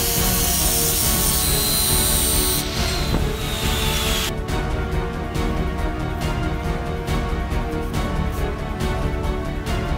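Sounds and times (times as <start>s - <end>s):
angle grinder grinding steel: 0.0s - 4.3s
background music: 0.0s - 9.9s.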